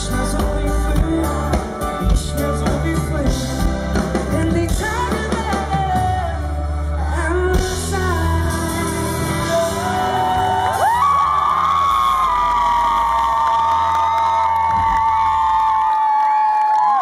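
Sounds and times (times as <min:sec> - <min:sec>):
person singing: 0:00.0 - 0:11.1
acoustic guitar: 0:00.0 - 0:12.4
live pop band: 0:00.0 - 0:17.0
audience cheering and whooping: 0:09.5 - 0:17.0.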